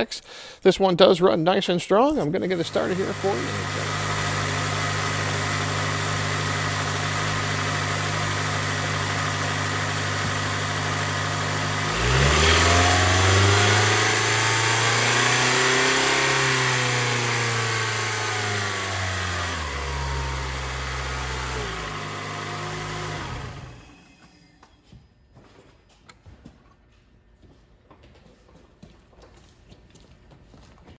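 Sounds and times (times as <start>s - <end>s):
car engine idling and revving: 2.5s - 24.6s.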